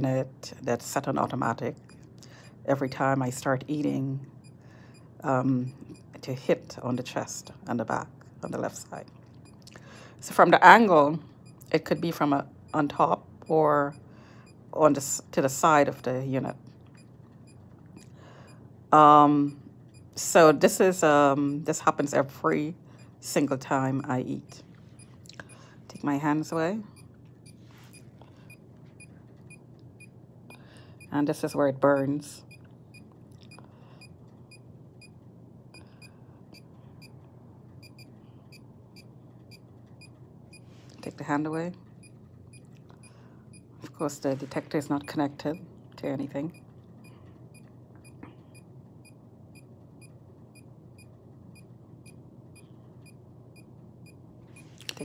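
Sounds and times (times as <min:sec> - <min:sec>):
field meter beeping: 0:00.8 - 0:06.2, 0:10.8 - 0:15.6, 0:21.2 - 0:37.2, 0:37.8 - 0:40.7, 0:44.4 - 0:45.7.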